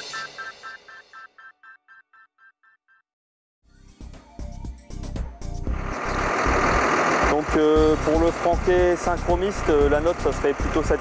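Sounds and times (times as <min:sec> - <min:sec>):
engine running: 0:05.6 - 0:11.0
man speaking: 0:07.3 - 0:11.0.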